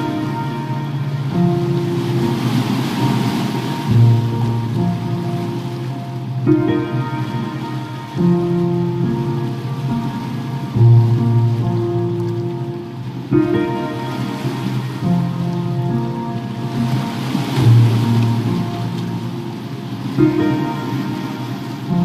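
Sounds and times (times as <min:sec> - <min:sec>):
ocean waves: 0:00.0 - 0:22.0
slow piano music: 0:00.0 - 0:22.0.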